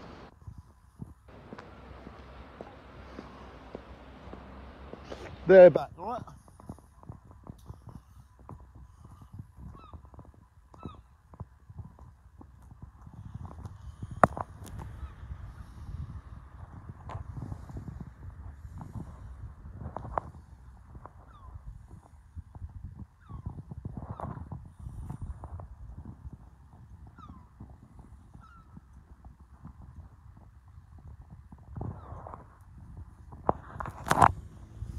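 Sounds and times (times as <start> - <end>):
footsteps on sand: 0.0 - 15.1.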